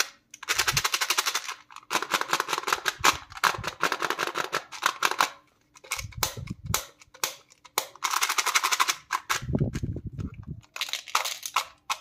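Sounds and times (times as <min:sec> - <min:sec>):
plastic wrapper crinkling: 0:08.0 - 0:12.0.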